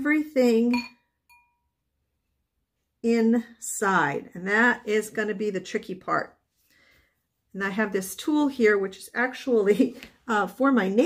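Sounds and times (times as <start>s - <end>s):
faint glass clink: 0.7s - 1.7s.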